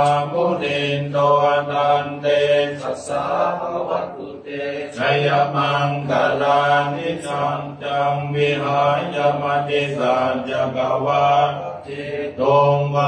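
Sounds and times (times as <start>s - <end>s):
monk chanting: 0.0s - 13.0s.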